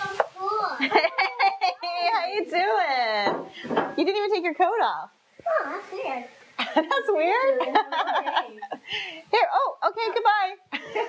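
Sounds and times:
child talking: 0.0s - 1.4s, 5.4s - 6.4s
woman talking: 6.9s - 10.6s.

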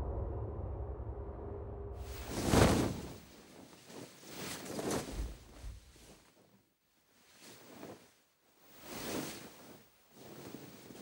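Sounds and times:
low droning tone: 0.0s - 2.3s
whoosh: 0.0s - 3.3s
soft swishing sounds: 2.0s - 11.0s.

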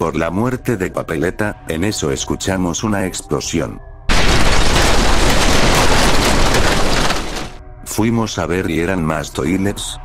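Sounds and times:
explosion blast and rumble: 4.1s - 7.6s.

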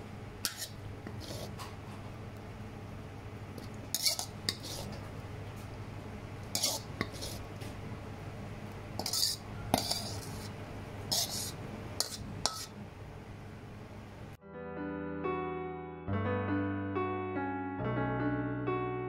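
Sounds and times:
steady low hum: 0.0s - 14.4s
metal ladle scraping a wok: 0.4s - 1.6s, 3.9s - 5.0s, 6.5s - 7.5s, 9.0s - 12.8s.

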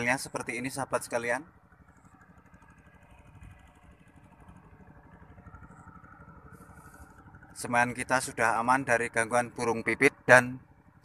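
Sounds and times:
small engine puttering: 0.0s - 11.0s.

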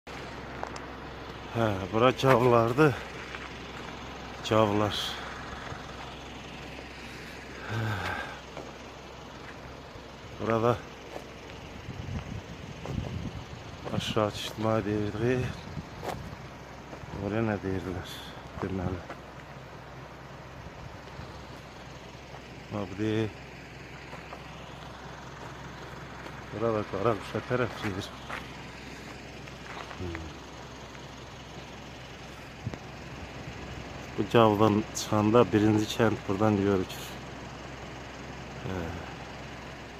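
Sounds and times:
vehicle on dirt road: 0.0s - 39.9s
man's voice: 1.5s - 3.1s, 4.4s - 5.4s, 13.9s - 15.6s, 17.1s - 19.1s, 26.6s - 28.2s.

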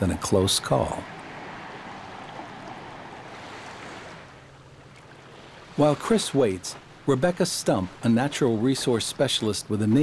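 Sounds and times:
small waves lapping on shore: 0.0s - 10.0s.

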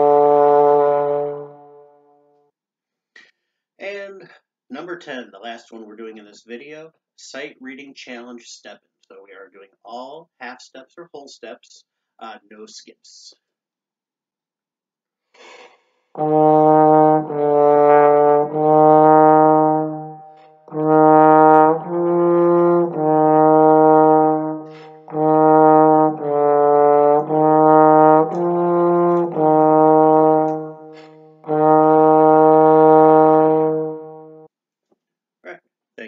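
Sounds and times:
trombone playing: 0.0s - 2.1s, 16.2s - 34.5s
player breathing: 24.6s - 25.1s, 30.8s - 31.4s.

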